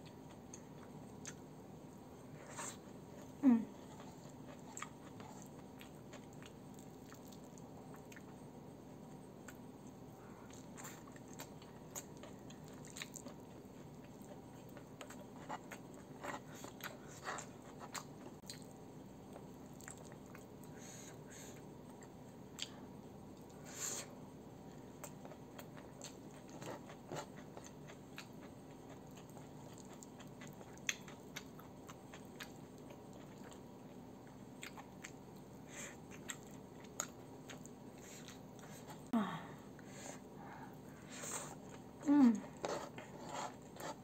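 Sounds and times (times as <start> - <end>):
close chewing with wet clicks: 0.0 - 1.5, 4.0 - 8.4, 9.4 - 20.7, 24.9 - 39.0
faint steady hum: 0.0 - 44.0.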